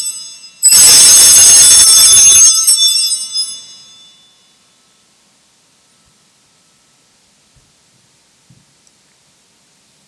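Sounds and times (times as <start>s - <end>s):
small handbells ringing: 0.0s - 4.9s.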